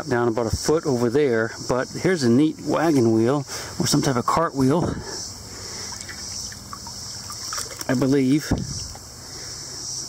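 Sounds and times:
insect chorus: 0.0 - 10.0
stream water sloshing and trickling: 0.6 - 9.1.

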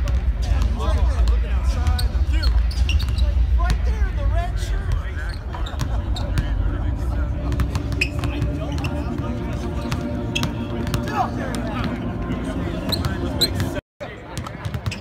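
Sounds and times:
steady low rumble: 0.2 - 13.4.

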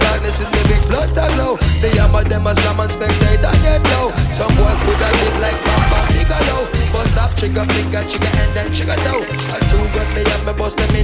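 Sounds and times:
hip-hop music with rapping: 0.0 - 11.0.

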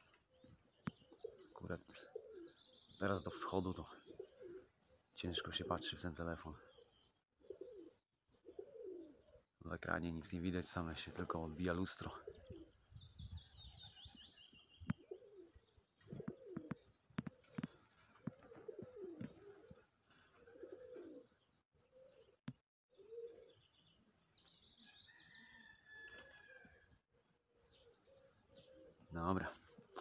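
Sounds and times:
pigeon cooing: 0.0 - 9.6, 12.0 - 23.7, 24.8 - 30.0.

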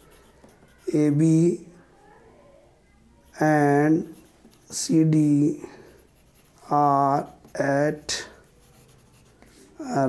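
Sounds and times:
pen scratching on paper: 0.0 - 1.2, 3.2 - 9.8
person speaking: 0.0 - 1.7, 3.2 - 10.0.

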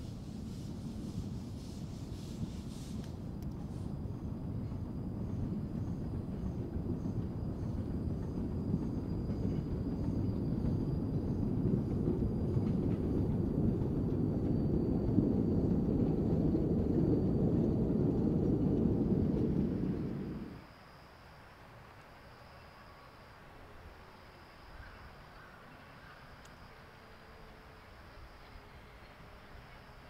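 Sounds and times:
steam train rumbling on track: 0.0 - 20.6.

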